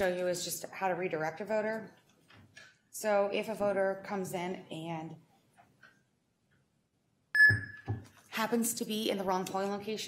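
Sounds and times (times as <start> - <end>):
high electronic beep: 7.4 - 8.0.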